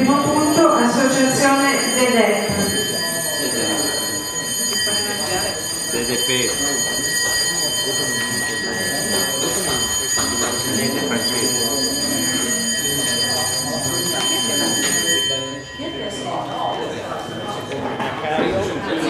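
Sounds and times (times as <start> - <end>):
murmur of people talking: 0.0 - 19.0.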